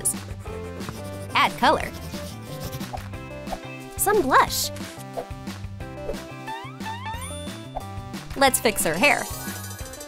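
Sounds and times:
coloured pencil scratching: 0.0 - 3.6
background music: 0.0 - 10.0.

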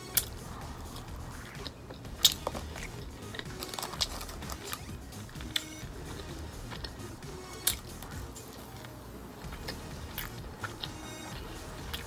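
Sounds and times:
chewing clicks and smacks: 0.0 - 12.0
music: 0.0 - 12.0.

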